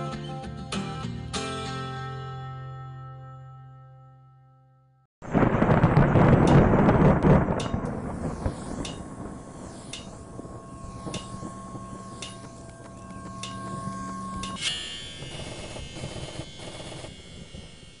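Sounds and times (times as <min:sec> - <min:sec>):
droning tones: 0:07.2 - 0:18.0
sharp ticks: 0:11.0 - 0:14.6.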